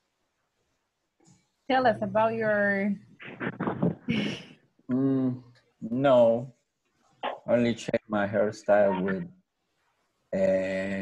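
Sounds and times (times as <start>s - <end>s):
person making hesitant vocal sounds: 3.3s - 6.4s, 7.2s - 9.2s, 10.4s - 11.0s.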